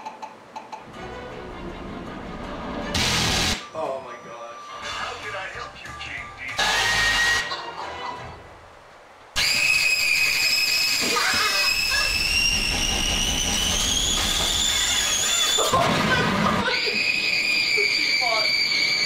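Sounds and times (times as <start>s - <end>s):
music: 0.9s - 8.5s
loud bursts of noise: 2.9s - 3.7s, 6.6s - 7.5s, 9.3s - 19.0s
loud shrill scream: 6.6s - 7.5s, 9.4s - 19.0s.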